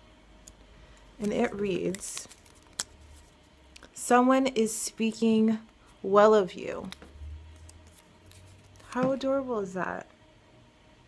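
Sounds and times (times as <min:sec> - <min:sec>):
person speaking: 0:01.2 - 0:02.4, 0:08.8 - 0:10.0.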